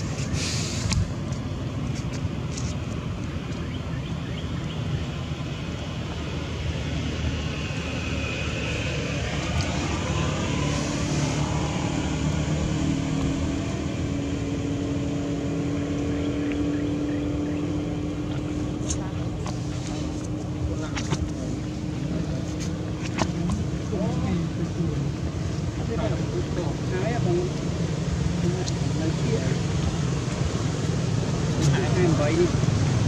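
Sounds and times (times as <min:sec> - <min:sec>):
engine drone: 0:00.0 - 0:33.0
low hum: 0:00.0 - 0:33.0.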